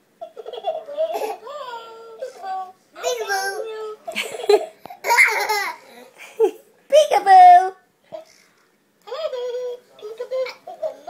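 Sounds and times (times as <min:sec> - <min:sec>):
small children laughing: 0:04.1 - 0:06.6, 0:09.0 - 0:11.0.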